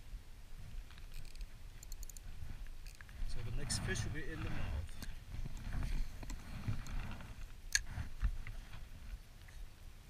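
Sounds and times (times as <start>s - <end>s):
rumbling handling noise: 0.6s - 9.2s
wind on microphone: 2.3s - 8.7s.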